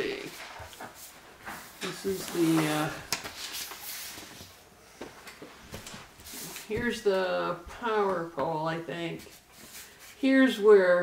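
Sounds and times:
papers rustling: 0:00.0 - 0:07.0.

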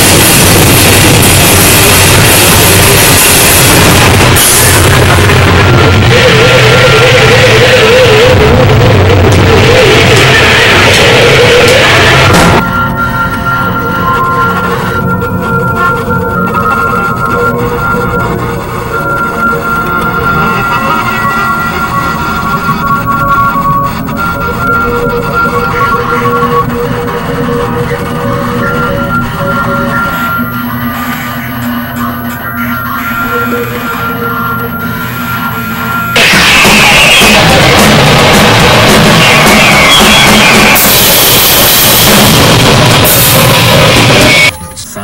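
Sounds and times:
harsh noise music: 0:00.0 - 0:45.0.

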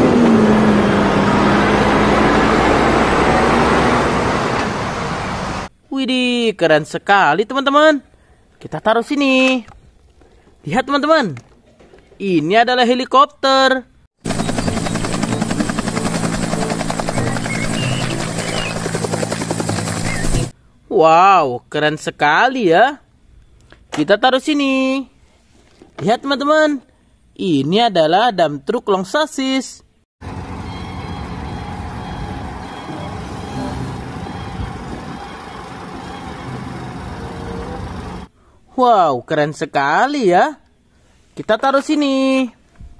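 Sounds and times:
helicopter engine hum: 0:00.0 - 0:05.7, 0:14.2 - 0:20.5, 0:30.2 - 0:38.3
helicopter rotor blades chopping: 0:14.2 - 0:20.5, 0:30.2 - 0:38.3.

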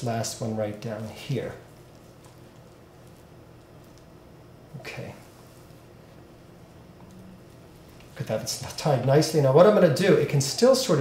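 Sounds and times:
soft twine handling noises: 0:00.0 - 0:08.9
steady low hum: 0:00.0 - 0:11.0.

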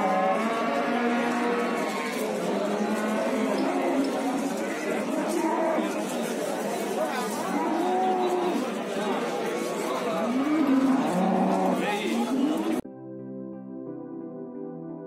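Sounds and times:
cattle mooing: 0:00.0 - 0:06.1, 0:07.2 - 0:08.8, 0:09.8 - 0:12.8
background chatter of voices: 0:00.0 - 0:12.8
soft synthesizer music: 0:12.8 - 0:15.0.

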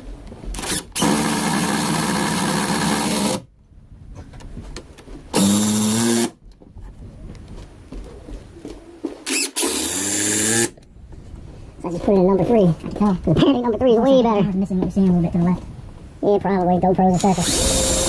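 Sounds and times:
cordless drill motor running: 0:00.6 - 0:03.4, 0:05.4 - 0:06.3, 0:09.3 - 0:10.7, 0:17.2 - 0:18.0.

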